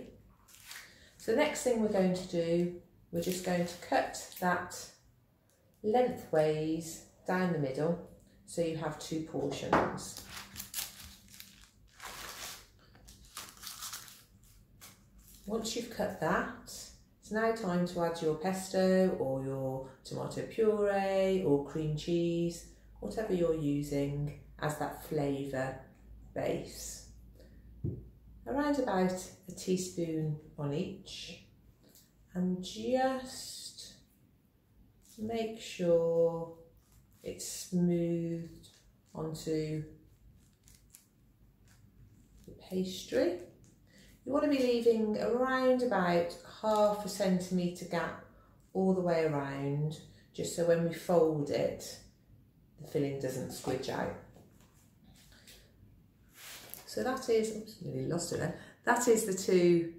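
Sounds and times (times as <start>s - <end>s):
baking paper crinkling: 0.4s - 1.0s, 10.0s - 15.6s, 40.1s - 42.6s.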